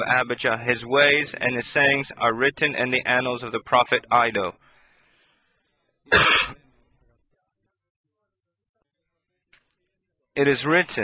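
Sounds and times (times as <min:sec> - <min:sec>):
man coughing: 0:06.1 - 0:06.8.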